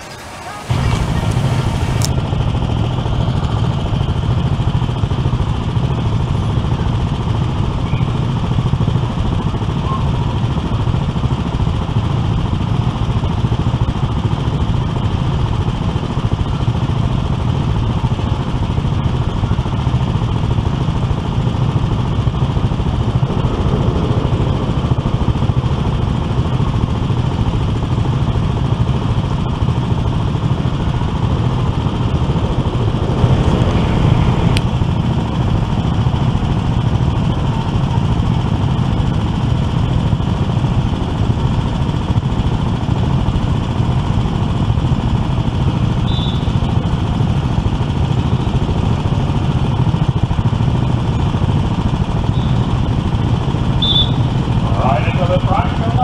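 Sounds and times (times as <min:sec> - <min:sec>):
go-kart engines idling: 0:00.0 - 0:56.0.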